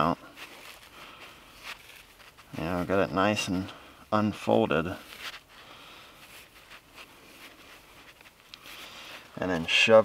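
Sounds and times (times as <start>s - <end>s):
steel wool rustling and crackling: 0.0s - 10.0s.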